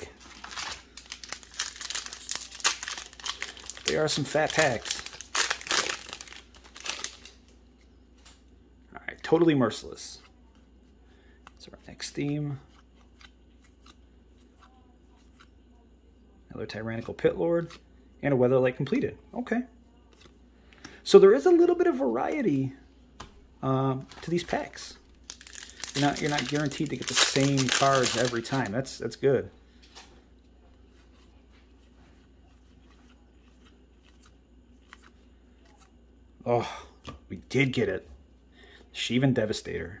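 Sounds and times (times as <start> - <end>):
low room hum: 0.0 - 40.0.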